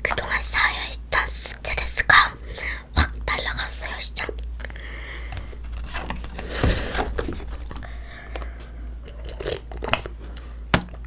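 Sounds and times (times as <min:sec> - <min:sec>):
girl whispering softly: 0:00.0 - 0:04.4.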